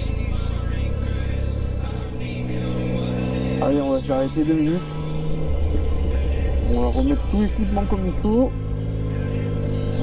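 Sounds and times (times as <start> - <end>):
background music: 0.0 - 10.0
motorcycle engine running: 0.0 - 10.0
man talking: 3.6 - 4.8, 6.7 - 8.5.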